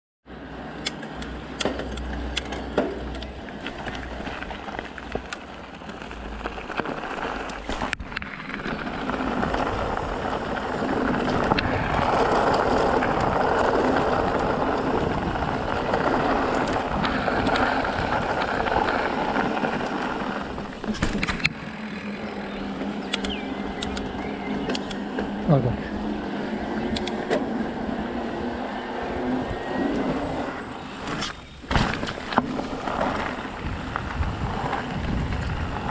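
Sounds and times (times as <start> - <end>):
bike tyres crunching over gravel: 1.3 - 35.9.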